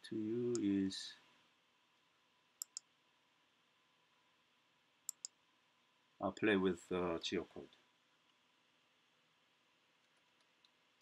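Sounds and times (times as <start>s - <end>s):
computer mouse double-clicks: 2.6s - 2.9s.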